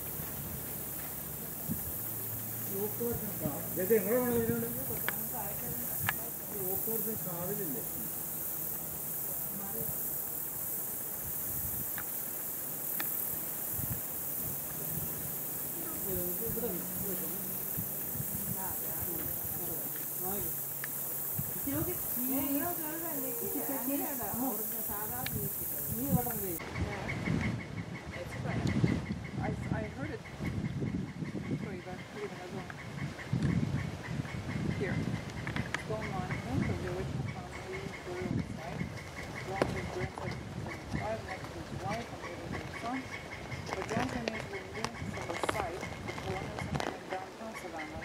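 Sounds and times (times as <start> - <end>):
steady high hiss: 0.0 - 26.6
indistinct voices talking: 0.8 - 33.2, 34.3 - 48.0
pulsing high tone: 14.0 - 26.6.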